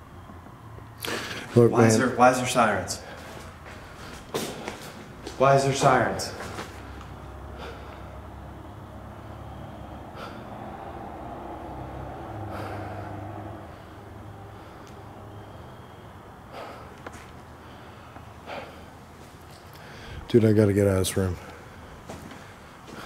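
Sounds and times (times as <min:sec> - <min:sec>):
man breathing heavily: 0:01.0 - 0:20.4, 0:21.2 - 0:23.0.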